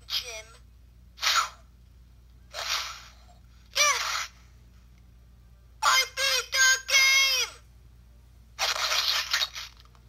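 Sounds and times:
high-pitched cartoon voice yelling: 3.8 - 4.1, 5.8 - 7.6.

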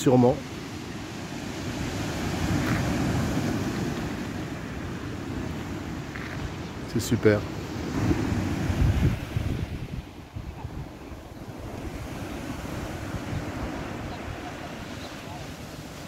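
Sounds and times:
sea waves washing onto beach: 0.0 - 16.0
wind buffeting microphone: 0.8 - 16.0.

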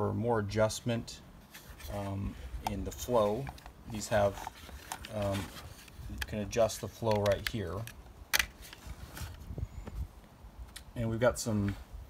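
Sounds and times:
faint clicks and rustles: 1.4 - 10.9
sharp plastic click: 7.1 - 8.6.

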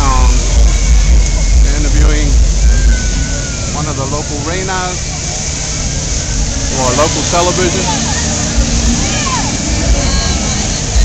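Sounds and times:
low rumble: 0.0 - 11.0
steady roar of street noise: 0.0 - 11.0.

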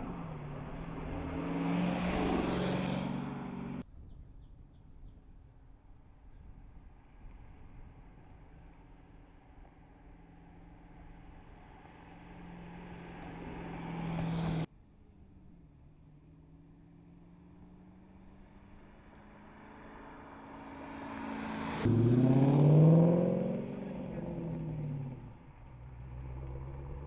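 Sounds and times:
car engine cruising: 0.0 - 3.8, 8.1 - 27.0.

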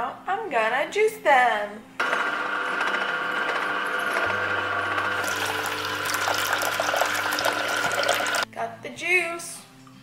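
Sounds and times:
juicer running: 2.0 - 8.5.

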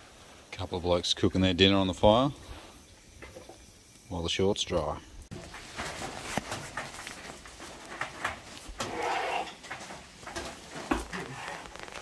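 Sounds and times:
heavy rain on a tin roof: 5.3 - 12.0.

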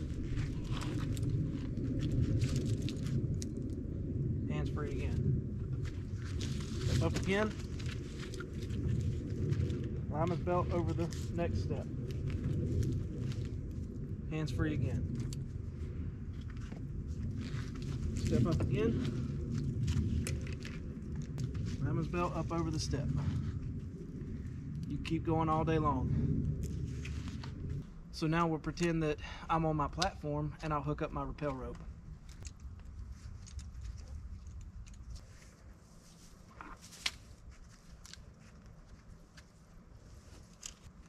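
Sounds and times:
rope and climbing gear rustling: 0.0 - 3.8, 5.6 - 14.0, 15.1 - 24.9, 26.6 - 27.9, 31.5 - 41.0
low steady rumble: 0.0 - 41.0.

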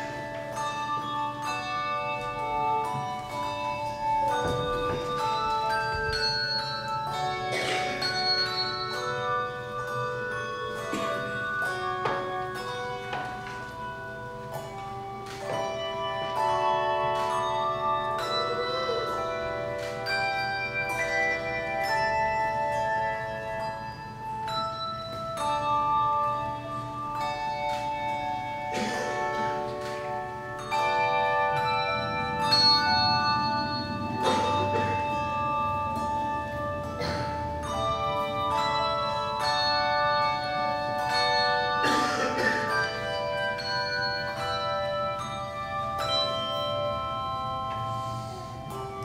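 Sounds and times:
handbell choir playing: 0.0 - 49.0.

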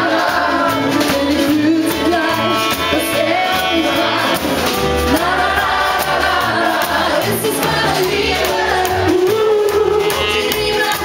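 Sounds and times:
woman singing: 0.0 - 4.5, 5.1 - 11.0
rockabilly band playing: 0.0 - 11.0
slapped upright bass: 0.0 - 11.0.

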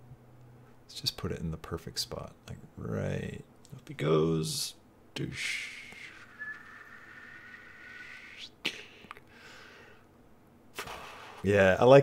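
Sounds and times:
man whistling long note: 5.4 - 8.6.

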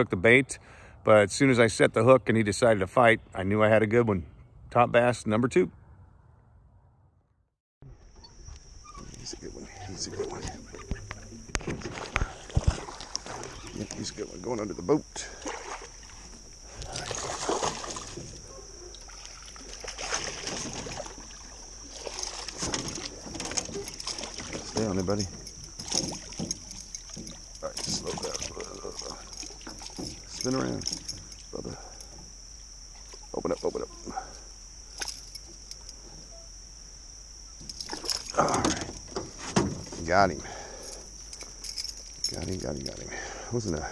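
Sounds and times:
insect chorus droning: 0.0 - 7.0, 7.8 - 43.9
fish splashing at water surface: 15.3 - 18.4.

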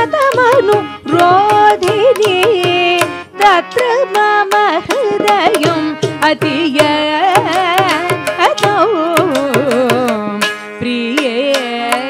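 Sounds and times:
harmonium tones: 0.0 - 12.0
woman singing ornamented phrases: 0.0 - 12.0.

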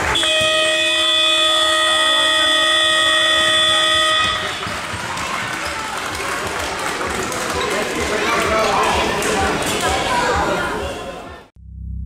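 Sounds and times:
timing horn long steady note: 0.0 - 4.9.

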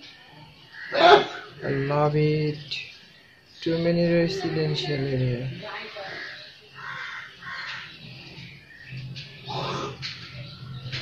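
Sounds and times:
faint background music: 0.0 - 11.0
bird calling: 0.7 - 11.0.

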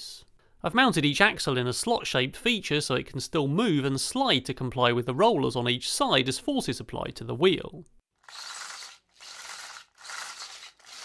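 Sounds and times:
plastic rattling whirr of wheels: 8.2 - 11.0.

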